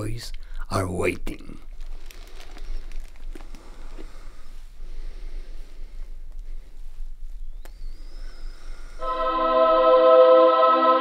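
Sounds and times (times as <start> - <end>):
low electrical hum: 0.0 - 11.0
faint handling clicks and rustles: 1.6 - 4.8
thin high tone: 9.0 - 11.0.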